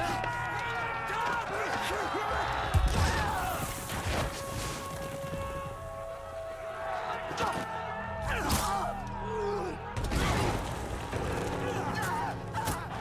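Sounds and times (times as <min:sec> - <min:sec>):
men shouting and yelling: 0:00.0 - 0:03.8, 0:05.6 - 0:10.0
orchestral film score: 0:00.0 - 0:13.0.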